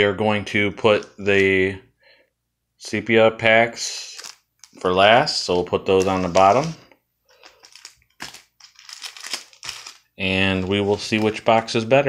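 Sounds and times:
card pack wrappers crinkling: 4.0s - 4.9s, 5.8s - 11.8s.

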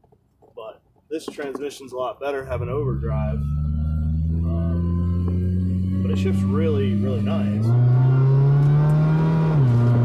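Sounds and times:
car engine droning: 2.4s - 10.0s.

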